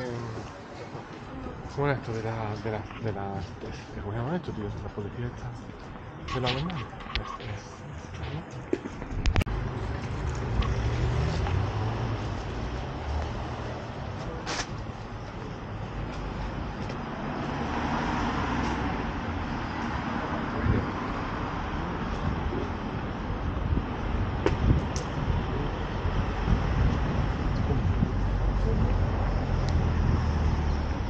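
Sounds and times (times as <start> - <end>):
road traffic rumble: 0.0 - 31.0.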